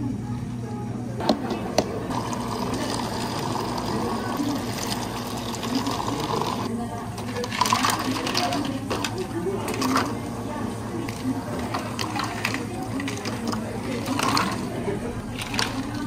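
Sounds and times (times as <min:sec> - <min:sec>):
water pouring into plastic cups: 0:02.1 - 0:06.7, 0:07.4 - 0:10.3, 0:11.0 - 0:16.0
ice cubes clattering into cup: 0:11.1 - 0:16.0.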